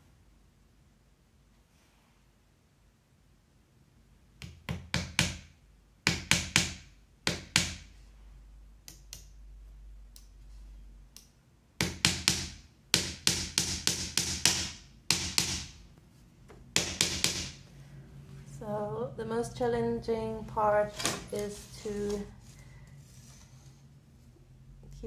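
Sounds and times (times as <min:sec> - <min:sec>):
hammer tapping small nails: 0:11.8 - 0:15.8, 0:16.8 - 0:17.6.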